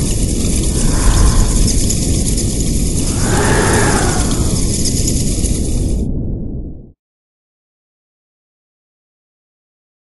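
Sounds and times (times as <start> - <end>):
loud rush of noise: 0.0 - 6.3.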